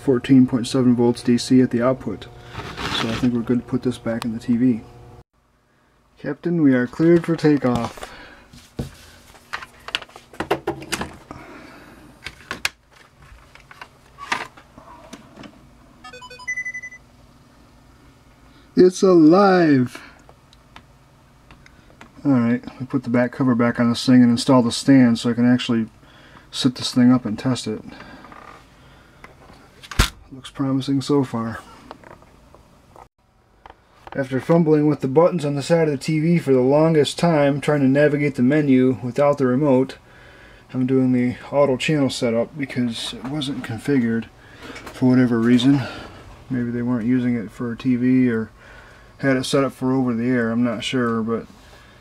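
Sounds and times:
television startup chime: 0:16.0 - 0:17.0.

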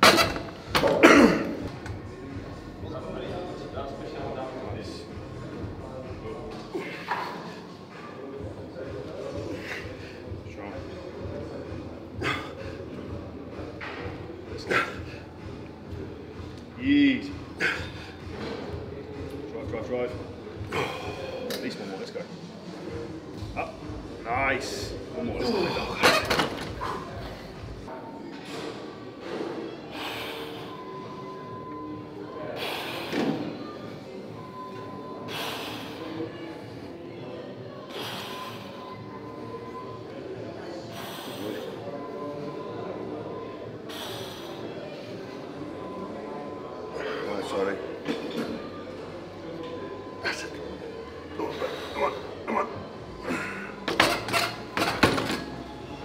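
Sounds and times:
background music: 0:00.0 - 0:28.2, 0:33.6 - 0:56.0.

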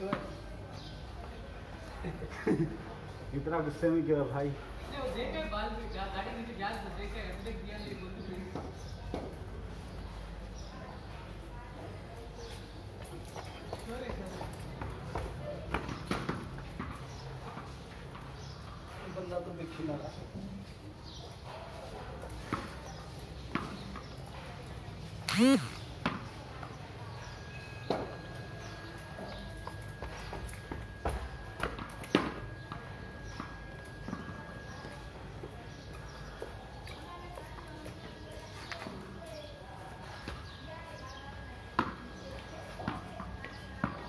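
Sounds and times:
voices talking: 0:25.3 - 0:25.9.

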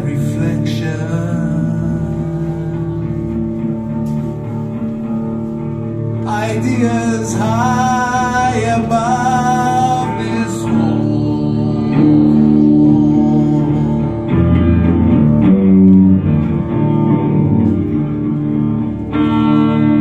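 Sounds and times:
electric guitar chords: 0:00.0 - 0:20.0.

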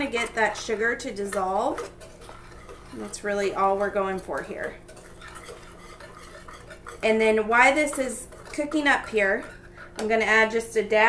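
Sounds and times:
whisk wires clicking on pan: 0:00.0 - 0:10.2
whisk scraping saucepan: 0:00.0 - 0:11.0.

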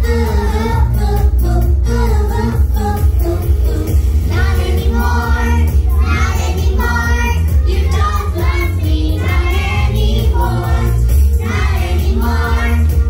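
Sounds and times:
backing music with bass: 0:00.0 - 0:13.0
children singing together: 0:00.0 - 0:13.0.

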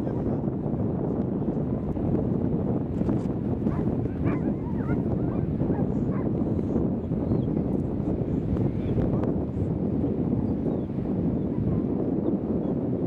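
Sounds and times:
wind rumble on microphone: 0:00.0 - 0:13.0
dogs whining and yipping: 0:03.7 - 0:05.5.

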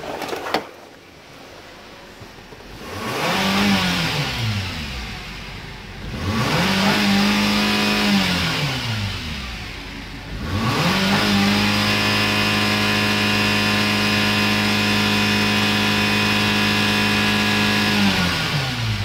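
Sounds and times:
car engine revving: 0:02.6 - 0:19.0.

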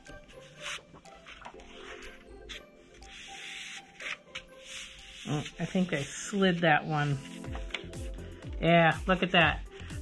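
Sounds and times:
faint background music: 0:00.0 - 0:10.0
paper rubbing: 0:00.1 - 0:07.9
paper swishing: 0:00.1 - 0:08.1.

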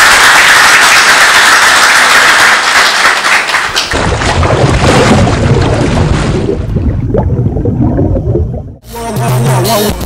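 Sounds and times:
deep rumble: 0:04.0 - 0:08.8
underwater bubbling and gurgling: 0:04.0 - 0:08.8.

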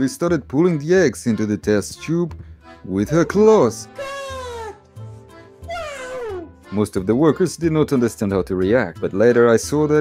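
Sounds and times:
animal call falling in pitch: 0:05.7 - 0:06.4.

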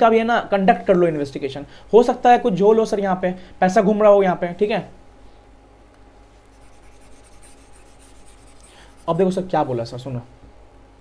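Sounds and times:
thin steady hum: 0:03.2 - 0:11.0
stylus scratching on pen tablet: 0:06.4 - 0:09.4.

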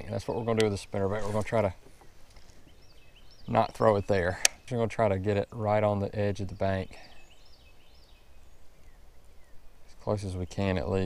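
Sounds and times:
faint bird song: 0:00.0 - 0:11.0
outdoor background noise: 0:00.0 - 0:11.0.

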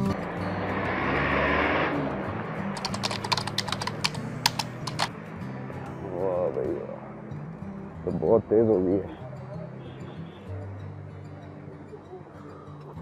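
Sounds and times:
faint background music: 0:00.0 - 0:13.0
sharp clicks and crackles: 0:02.8 - 0:05.2.

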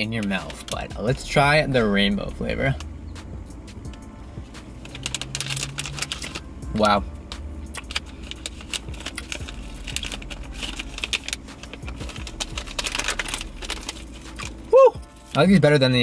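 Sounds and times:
plastic candy bag crinkling: 0:04.7 - 0:06.5, 0:07.7 - 0:15.4.

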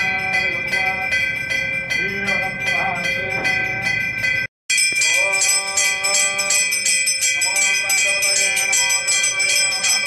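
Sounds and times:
temple bells ringing rapidly: 0:00.0 - 0:10.0.

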